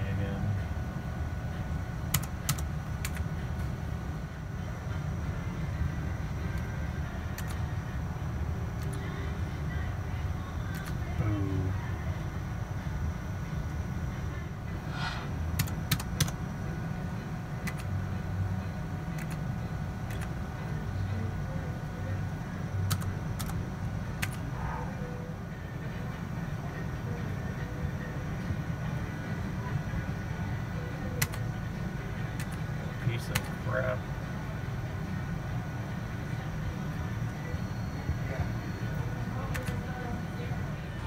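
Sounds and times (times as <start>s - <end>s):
casino floor hum: 14.6s - 16.2s.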